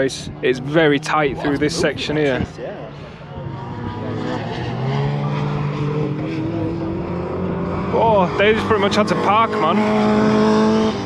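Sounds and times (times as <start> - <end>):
racing car engines: 0.0 - 11.0.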